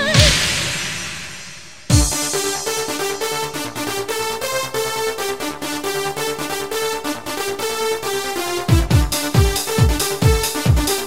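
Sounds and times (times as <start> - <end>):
kick drum beat: 0.0 - 2.9, 8.7 - 11.0
hi-hats: 0.0 - 5.4, 8.7 - 11.0
held synth chords: 1.9 - 11.0.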